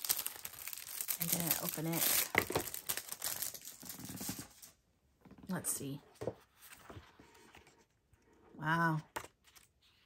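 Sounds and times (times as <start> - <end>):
packaging crinkling and tearing: 0.0 - 4.7.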